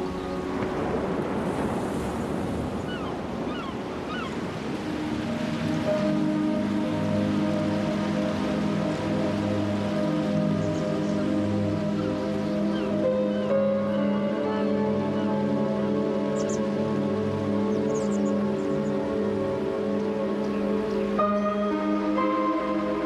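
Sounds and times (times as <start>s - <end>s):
ocean surf washing: 0.0s - 23.0s
soundtrack music with sustained chords: 0.0s - 23.0s.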